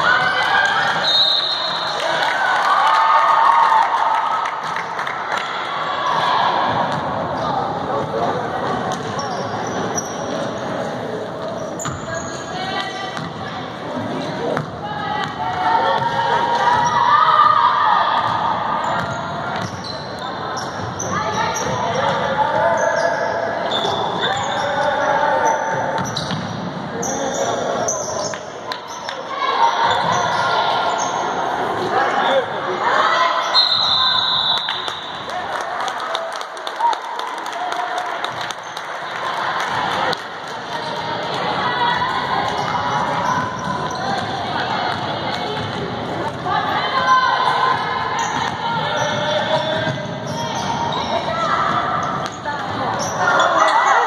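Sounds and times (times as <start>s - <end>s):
sneaker squeaks: 8.9s - 13.4s, 14.5s - 17.1s, 18.2s - 31.4s, 33.2s - 35.2s, 42.6s - 45.7s, 47.0s - 54.0s.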